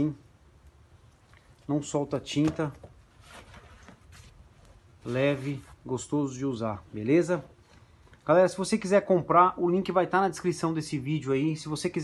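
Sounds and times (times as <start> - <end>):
cloth cap rustling: 2.2 - 6.1
soft scuffs: 2.3 - 6.1.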